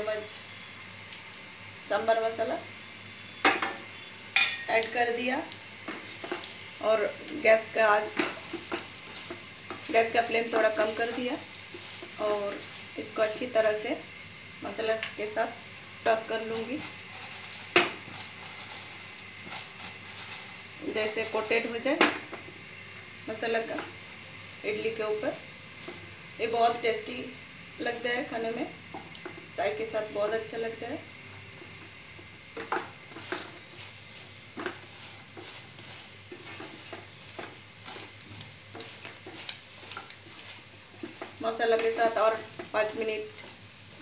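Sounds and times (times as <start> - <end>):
food sizzling in hot oil: 0.0 - 44.0
spatula scraping and knocking pan: 5.8 - 6.5, 8.0 - 12.8, 16.5 - 20.6, 32.5 - 44.0.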